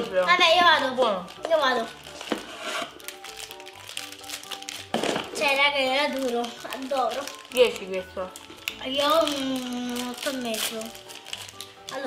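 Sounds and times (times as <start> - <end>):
light background music: 0.0 - 12.0
plastic candy wrappers crinkling: 0.0 - 12.0.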